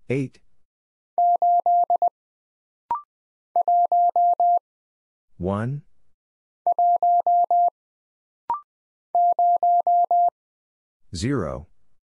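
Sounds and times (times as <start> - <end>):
morse code tone: 1.2 - 2.1, 3.6 - 4.6, 6.7 - 7.7, 9.2 - 10.3.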